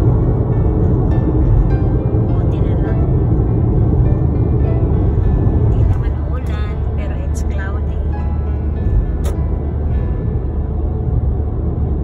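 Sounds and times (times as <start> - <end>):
car road and engine rumble: 0.0 - 12.0
music: 0.0 - 12.0.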